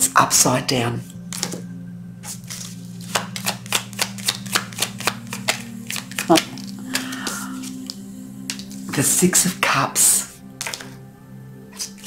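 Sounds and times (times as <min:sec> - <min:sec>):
low steady hum: 0:00.0 - 0:12.0
cards being shuffled: 0:01.3 - 0:01.6, 0:02.2 - 0:09.2, 0:10.6 - 0:11.0.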